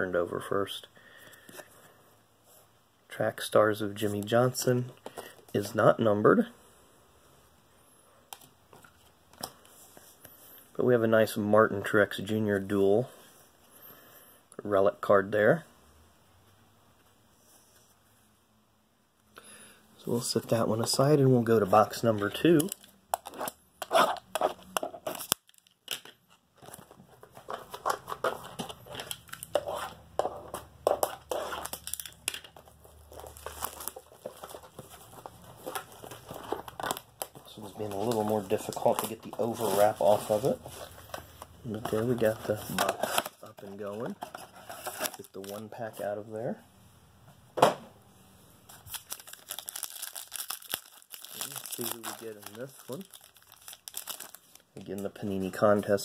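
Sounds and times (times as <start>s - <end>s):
plastic wrap tearing and crinkling: 21.7s - 26.9s, 30.8s - 45.7s, 48.7s - 54.8s.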